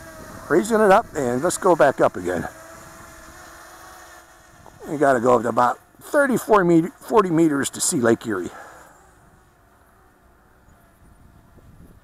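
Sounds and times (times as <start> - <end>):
drone motors humming: 0.0 - 12.0.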